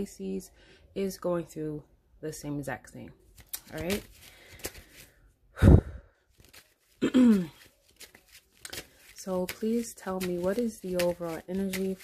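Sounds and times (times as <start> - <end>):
woman speaking: 0.0 - 4.1, 9.2 - 12.0.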